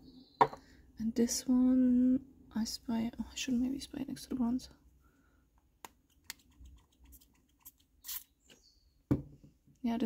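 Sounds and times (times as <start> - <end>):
spray bottle hiss: 8.0 - 8.3.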